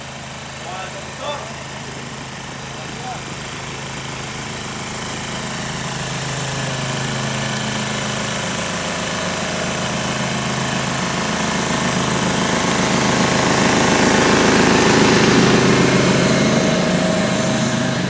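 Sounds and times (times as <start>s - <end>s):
small engine running: 0.0s - 18.0s.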